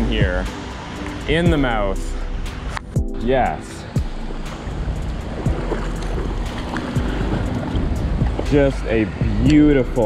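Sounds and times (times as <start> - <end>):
shallow creek water rushing: 0.0 - 10.0
wind noise on microphone: 3.8 - 10.0.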